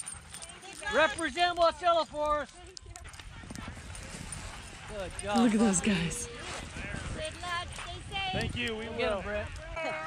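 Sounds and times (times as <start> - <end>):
sled dogs running on snow: 0.0 - 10.0.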